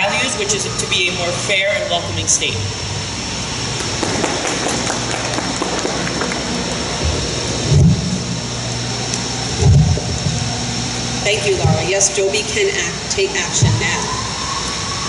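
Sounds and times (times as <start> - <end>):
crowd clapping: 3.8 - 7.4.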